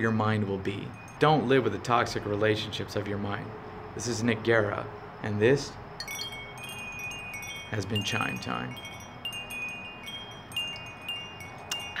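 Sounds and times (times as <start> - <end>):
wind chimes ringing: 0.0 - 2.8, 6.0 - 12.0.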